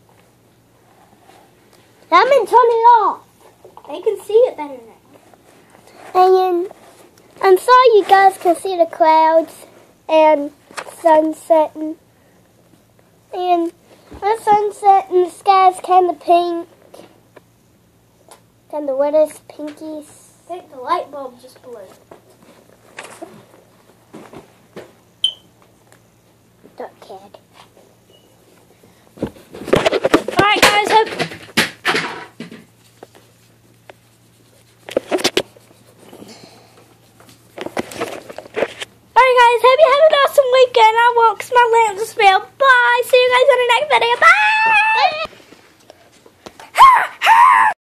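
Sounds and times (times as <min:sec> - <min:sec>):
soft rustles: 0:03.3 - 0:08.6, 0:32.6 - 0:38.9
girl squealing: 0:44.2 - 0:45.3, 0:46.7 - 0:47.8.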